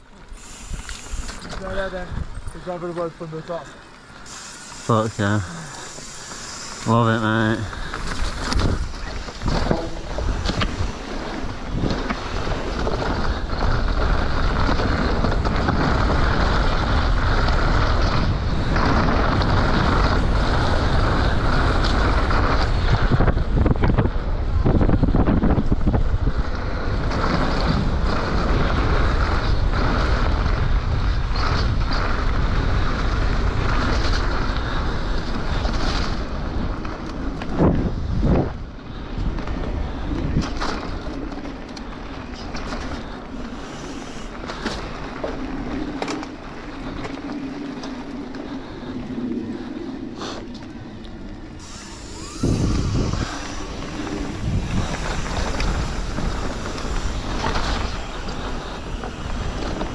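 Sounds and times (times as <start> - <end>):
wind rushing over microphone: 0.0 - 2.9, 4.4 - 59.9
bike rattling over stones: 0.0 - 59.9
tyres crunching on gravel: 53.0 - 59.9.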